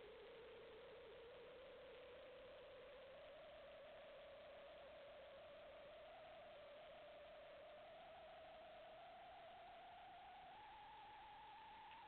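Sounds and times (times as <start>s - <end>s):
faint camera hiss: 0.0s - 12.0s.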